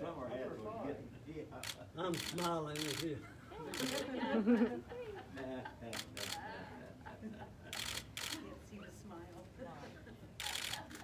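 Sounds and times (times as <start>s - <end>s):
camera shutters clicking: 1.6s - 3.1s, 3.7s - 4.1s, 5.9s - 6.4s, 7.7s - 8.4s, 10.4s - 11.0s.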